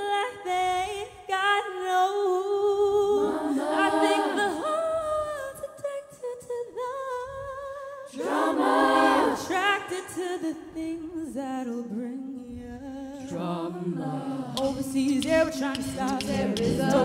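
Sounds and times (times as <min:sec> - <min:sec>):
female a cappella group singing: 0:00.0 - 0:17.0.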